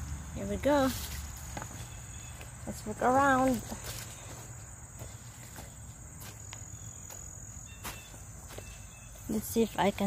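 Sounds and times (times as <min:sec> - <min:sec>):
insect chorus trilling: 0:00.0 - 0:10.0.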